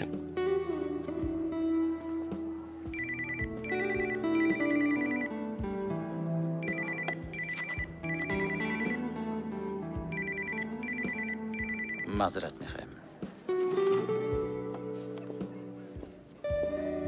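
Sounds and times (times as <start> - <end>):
soft background music: 0.0 - 17.0
mobile phone ringtone trill: 2.9 - 5.4, 6.6 - 9.2, 10.1 - 12.3.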